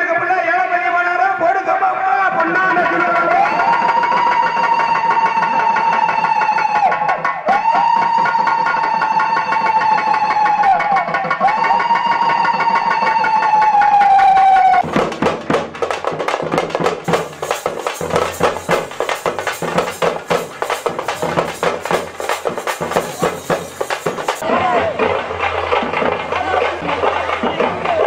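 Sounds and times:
fast frame drumming: 2.9 - 28.0
steady drum beat: 3.4 - 28.0.

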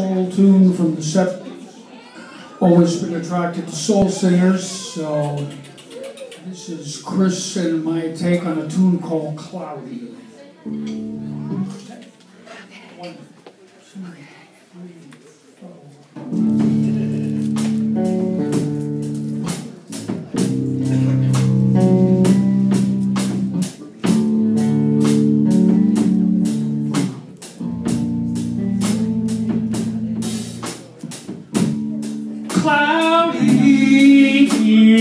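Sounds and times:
electric bass guitar chords: 10.7 - 11.7, 16.3 - 35.0
drum kit beat: 16.3 - 35.0.

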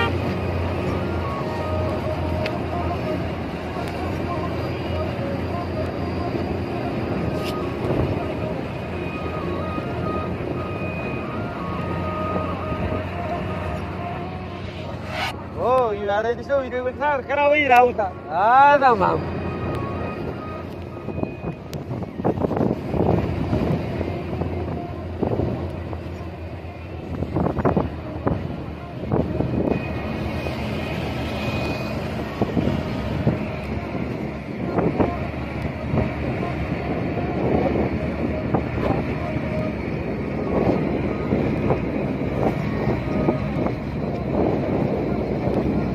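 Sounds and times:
faint melody: 0.0 - 15.8, 18.0 - 45.9
truck engine and road noise: 0.0 - 45.9.

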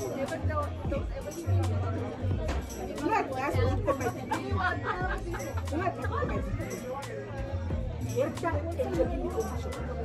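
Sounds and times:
women talking: 0.0 - 7.1, 8.0 - 10.0
background music with beat: 0.0 - 10.0.

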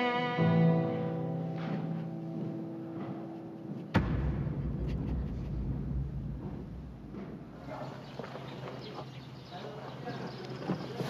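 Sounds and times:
sharp thump: 3.8 - 7.7
low steady rumble: 4.0 - 7.8.

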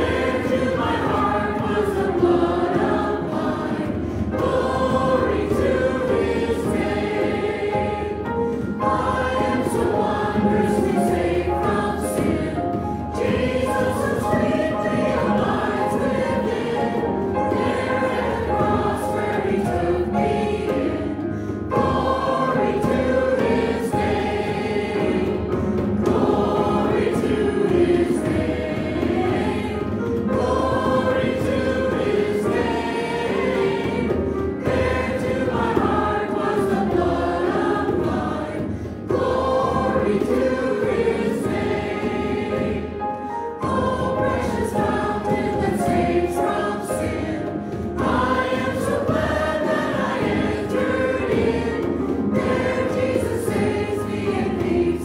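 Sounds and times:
congregation singing a hymn: 0.0 - 55.0
instrumental accompaniment: 0.0 - 55.0.

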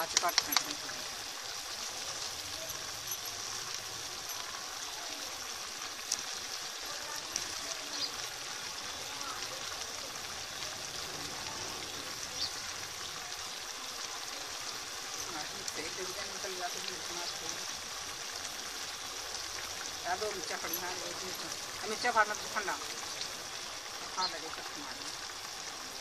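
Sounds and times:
water boiling in a pot: 0.0 - 26.0.

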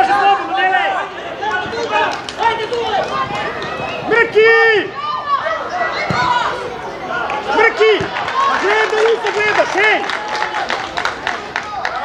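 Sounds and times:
people shouting and calling out: 0.0 - 10.6.

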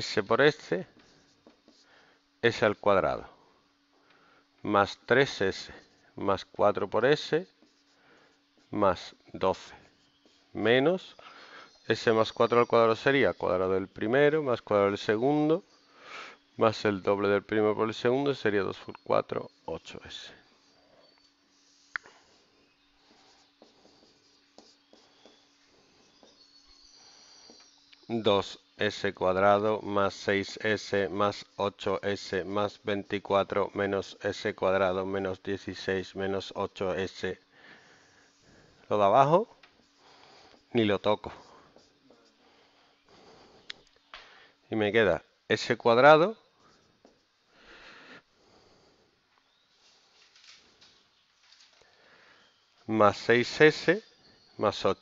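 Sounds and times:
man talking: 0.0 - 1.0, 2.4 - 3.4, 4.6 - 7.6, 8.7 - 9.8, 10.6 - 11.2, 11.9 - 15.7, 16.6 - 20.4, 28.1 - 37.4, 38.9 - 39.6, 40.7 - 41.6, 44.7 - 46.4, 52.9 - 54.0, 54.6 - 55.0
marker scratching on whiteboard: 0.5 - 2.0, 5.2 - 11.2, 20.5 - 26.5, 38.0 - 42.5.

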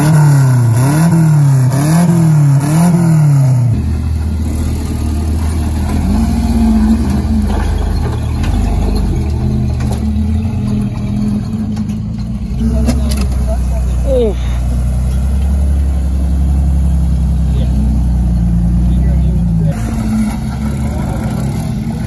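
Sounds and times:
off-road engines revving: 0.0 - 22.0.

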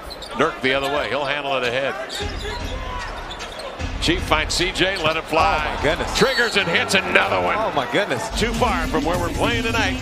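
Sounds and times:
arena crowd noise: 0.0 - 10.0
basketball game sounds: 0.0 - 10.0.

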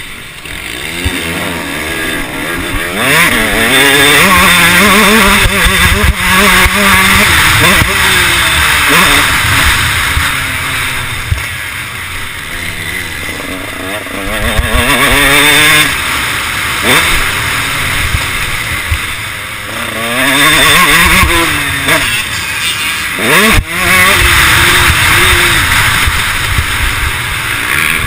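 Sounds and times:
motocross engine revving: 0.0 - 28.0.

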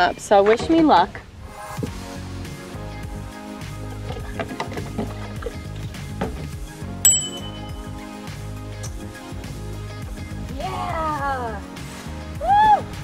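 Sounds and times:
background music: 0.0 - 13.0
bright ringing ding: 7.1 - 7.9.

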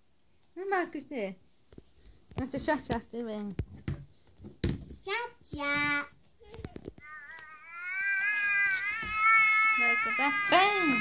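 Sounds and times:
baby doll crying: 7.0 - 11.0.

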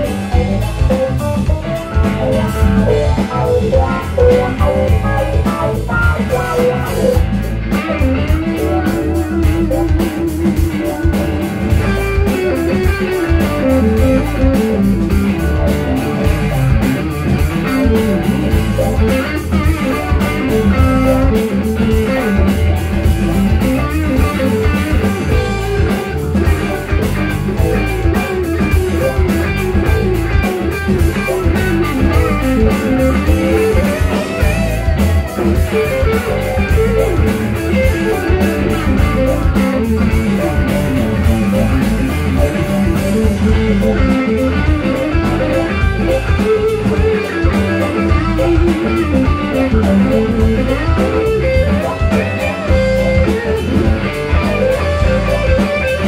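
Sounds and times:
bass guitar: 0.0 - 56.0
drums: 0.0 - 56.0
electric guitars: 0.0 - 56.0
electric keyboard: 0.0 - 56.0.

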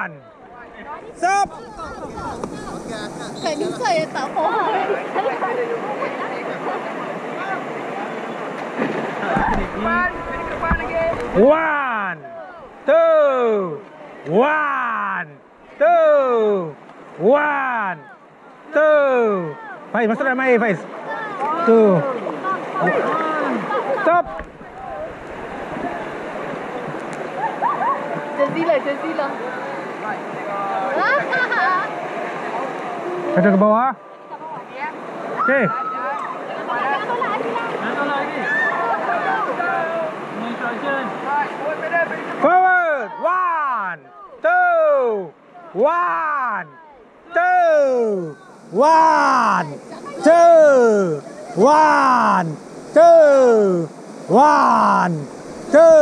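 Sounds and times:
river water rushing: 0.0 - 56.0
wind buffeting microphone: 1.3 - 4.1.

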